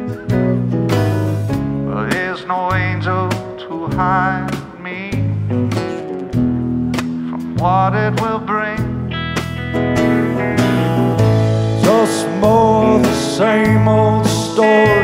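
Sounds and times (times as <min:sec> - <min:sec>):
bass guitar: 0:00.0 - 0:15.0
electric guitar lead with bent notes: 0:00.0 - 0:15.0.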